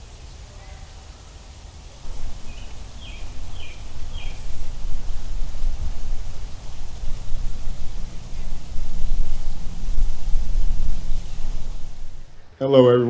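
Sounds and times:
bird chirping: 2.0 - 12.5
low rumble: 2.0 - 12.6.

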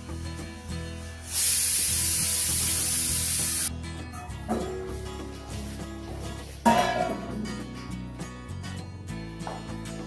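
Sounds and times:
background music: 0.0 - 10.0
pressure cooker whistle hissing: 1.3 - 3.7.

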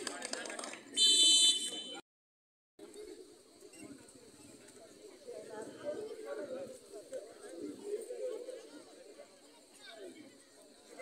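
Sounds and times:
referee's whistle blast: 1.0 - 2.0.

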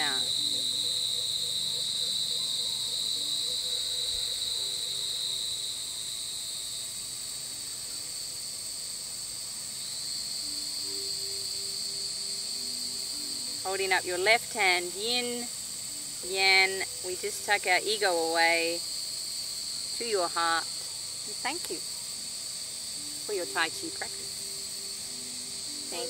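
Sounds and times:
insects chorus high-pitched: 0.0 - 26.0.

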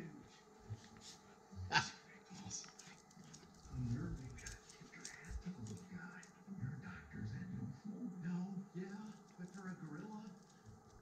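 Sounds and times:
dogs scuffling: 2.6 - 6.3.

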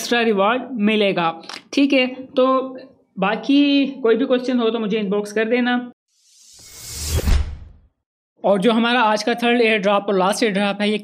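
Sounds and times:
whoosh transition effect: 6.1 - 7.9.

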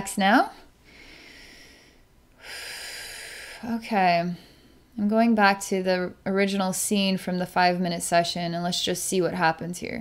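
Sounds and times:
woman breathing deeply: 0.7 - 4.9.

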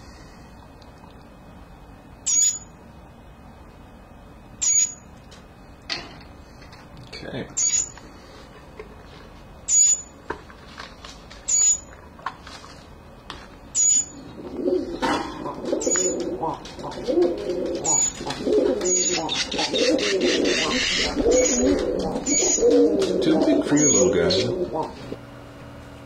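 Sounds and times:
fledgling birds begging chirps: 15.7 - 16.6, 17.6 - 24.4.

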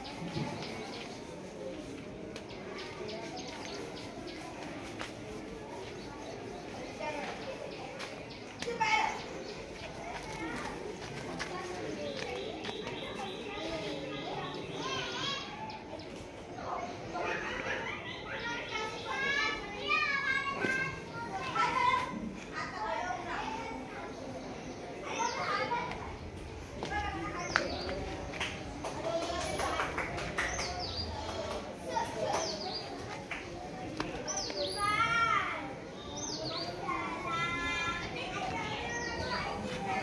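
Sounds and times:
children chattering and calling out: 0.0 - 40.0.

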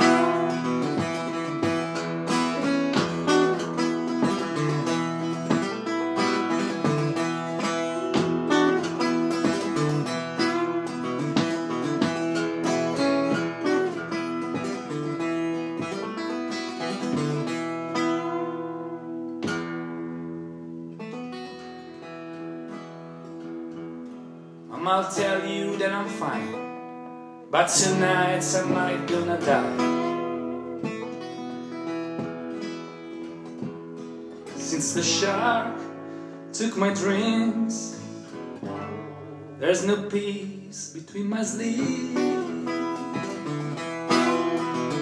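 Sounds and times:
solo acoustic guitar: 0.0 - 45.0.

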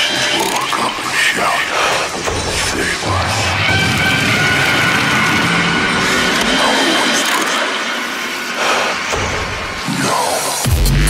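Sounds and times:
low bass: 10.6 - 11.0.

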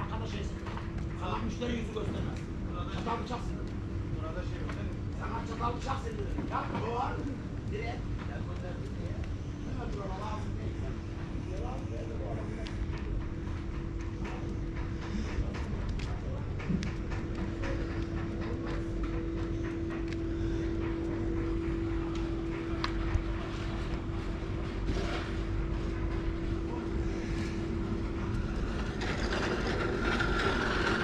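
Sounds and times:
low outdoor rumble: 0.0 - 31.0
steady machine hum: 0.0 - 31.0.

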